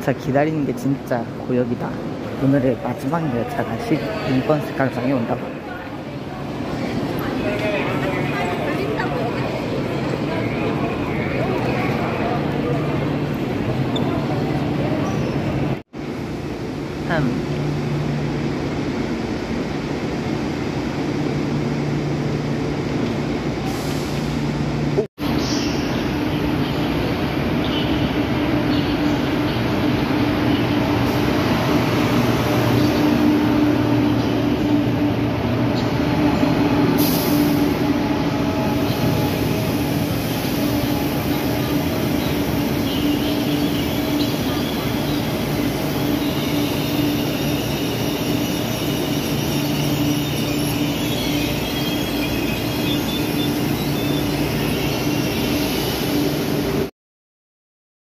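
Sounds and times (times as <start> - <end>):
train rumbling: 0.0 - 56.9.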